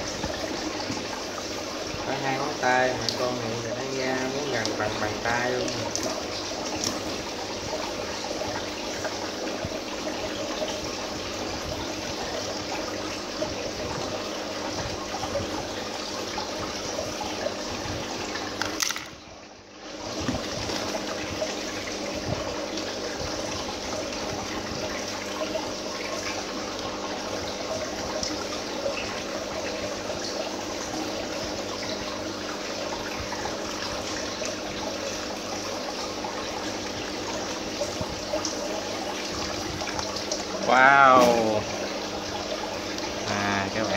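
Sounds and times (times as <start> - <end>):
pump humming: 0.0 - 43.9
water trickling and splashing: 0.0 - 43.9.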